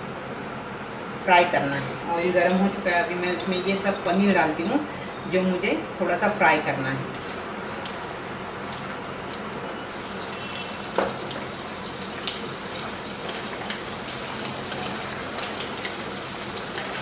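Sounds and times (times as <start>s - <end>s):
cheese sizzling in hot oil: 7.1s - 17.0s.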